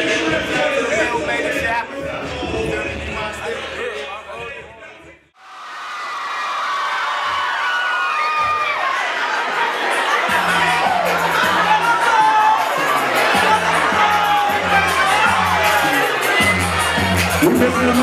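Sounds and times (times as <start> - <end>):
music with repeating bass line: 0.0 - 4.7, 10.2 - 18.0
crowd cheering and shouting: 5.4 - 18.0.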